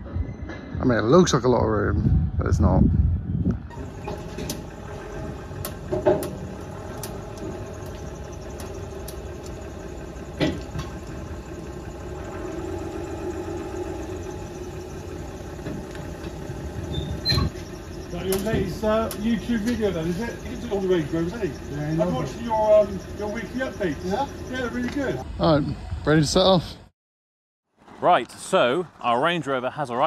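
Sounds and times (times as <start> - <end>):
engine idling: 3.7 - 25.6
loud knocks: 4.1 - 6.6.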